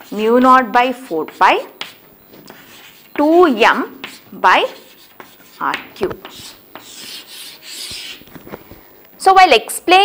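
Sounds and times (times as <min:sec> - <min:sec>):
chalk scraping on chalkboard: 0:00.0 - 0:08.3.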